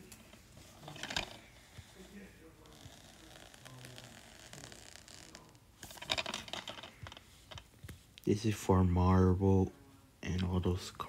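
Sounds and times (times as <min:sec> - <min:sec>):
plastic case scratching and rubbing: 0:00.3 - 0:07.7
plastic case clicks and scrapes: 0:05.8 - 0:07.7.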